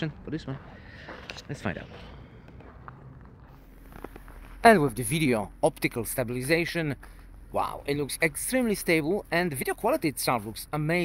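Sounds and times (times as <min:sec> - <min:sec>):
soft footsteps: 0:00.0 - 0:11.0.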